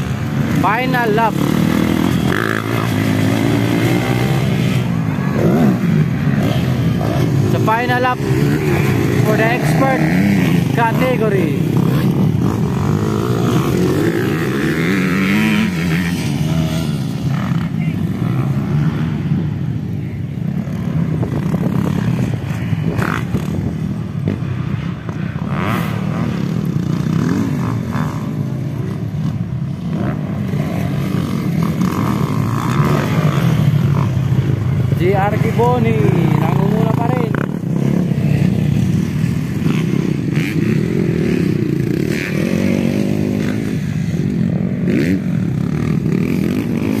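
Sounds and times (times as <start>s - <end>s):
dirt bike engines revving: 0.0s - 47.0s
low rumble of engines: 0.0s - 47.0s.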